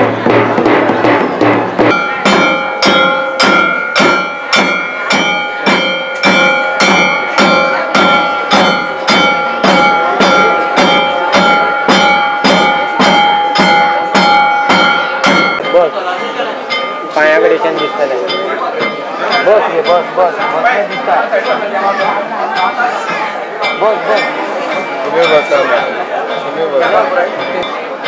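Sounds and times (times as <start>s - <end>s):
percussion beating steady rhythm: 0.0s - 28.0s.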